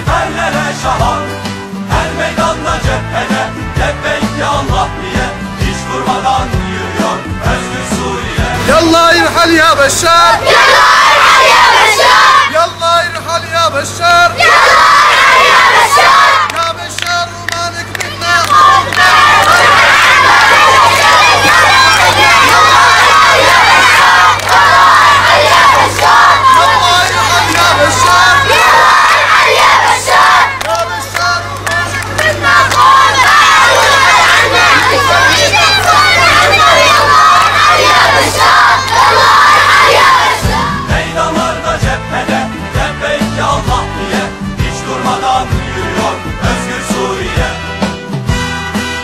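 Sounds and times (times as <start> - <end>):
music with low beat: 0.0 - 9.8, 31.6 - 48.7
adult voices leading chant: 7.2 - 47.6
children shouting a chant: 10.2 - 12.6, 14.3 - 16.6, 17.9 - 41.0.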